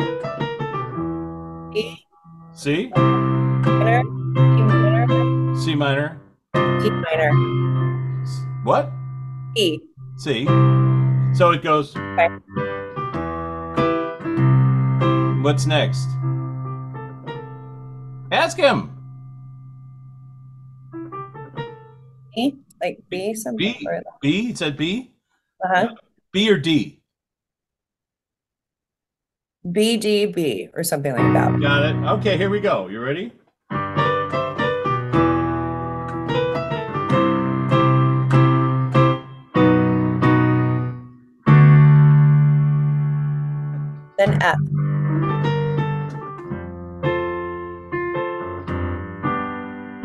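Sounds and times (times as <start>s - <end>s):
keyboard chords and notes: 0.0s - 22.4s, 23.6s - 24.9s, 31.2s - 50.0s.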